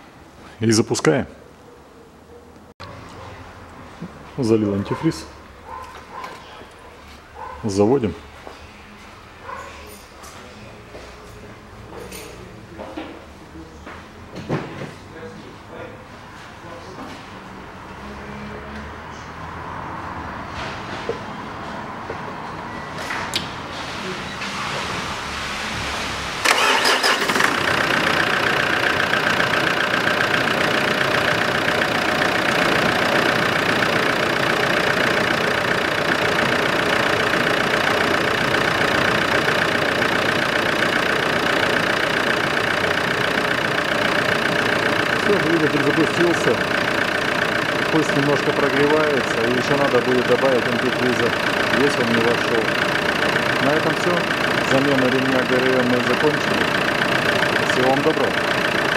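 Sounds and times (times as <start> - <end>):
diesel engine starting and idling: 22.7 - 58.9.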